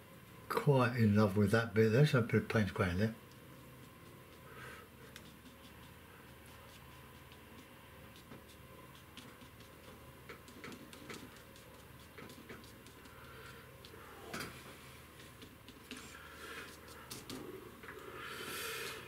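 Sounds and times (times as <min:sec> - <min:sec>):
paintbrush dabbing paint: 0:03.2 - 0:17.8
scratchy brush stroke: 0:03.5 - 0:17.6.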